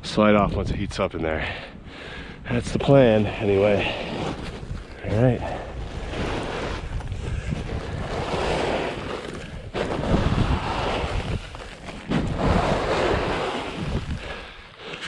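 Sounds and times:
push broom sweeping snow: 3.4 - 15.0.

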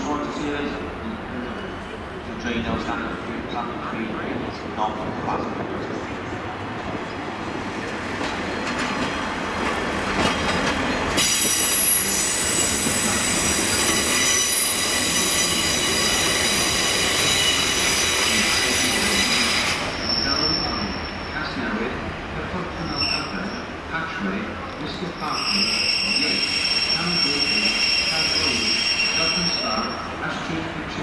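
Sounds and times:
train wheels squealing: 11.2 - 21.6, 22.8 - 23.8, 25.1 - 30.2.

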